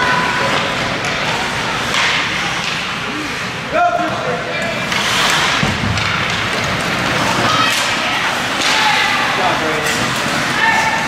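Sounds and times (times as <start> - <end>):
skates scraping ice: 0.0 - 11.0
hockey sticks knocking: 0.4 - 3.0, 4.8 - 11.0.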